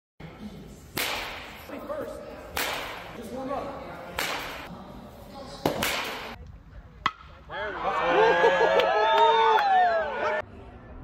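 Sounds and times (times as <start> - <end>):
baseball bat striking ball: 1.0 - 1.7, 2.5 - 3.2, 4.1 - 4.7, 5.6 - 6.4, 7.0 - 7.4.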